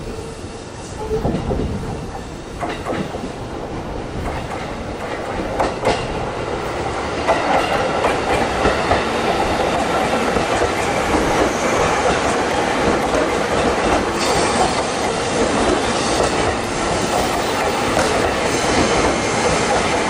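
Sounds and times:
train wheels rumbling on rails: 0.0s - 20.0s.

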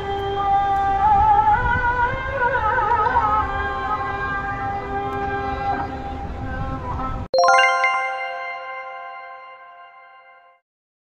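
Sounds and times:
bell-like electronic chime jingle: 7.4s - 10.6s.

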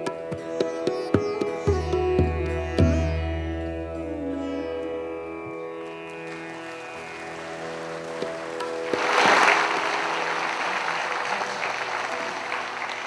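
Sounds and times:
audience applause: 6.5s - 13.0s.

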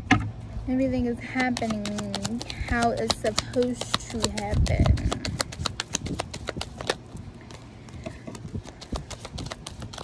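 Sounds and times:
cards being shuffled: 1.4s - 10.0s.

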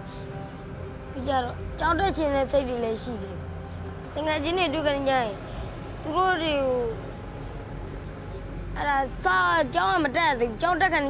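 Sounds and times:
faint background noise: 0.0s - 11.0s
young boy speaking: 1.1s - 3.4s, 4.1s - 7.1s, 8.8s - 11.0s.

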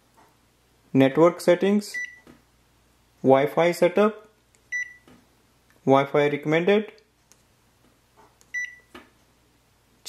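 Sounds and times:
printer control panel beep: 4.7s - 5.1s, 8.5s - 8.9s.

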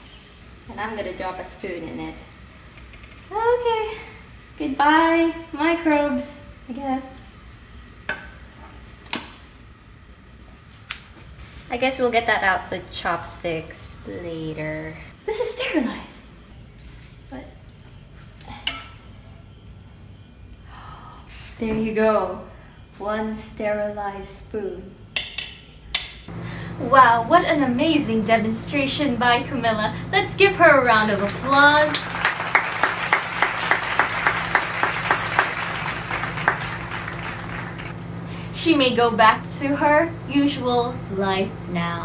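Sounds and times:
utensils clacking against pot: 18.6s - 19.1s
applause: 31.2s - 37.9s
sharp hand claps: 31.9s - 37.9s.

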